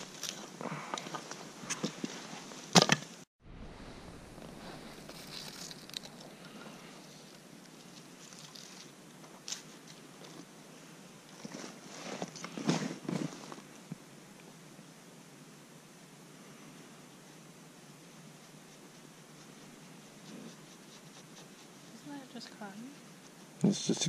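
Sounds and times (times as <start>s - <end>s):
wood rustling: 4.3s - 10.5s.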